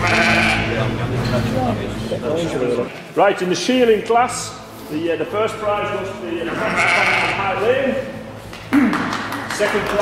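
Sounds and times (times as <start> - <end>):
sheep bleating: 0.0 - 0.8, 6.5 - 7.6
people talking: 9.5 - 10.0.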